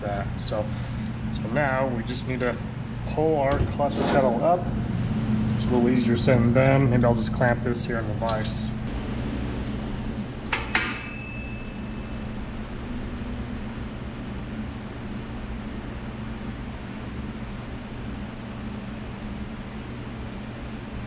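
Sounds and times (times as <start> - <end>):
steady low hum: 0.0 - 21.0
sharp metal clanks: 10.5 - 12.2.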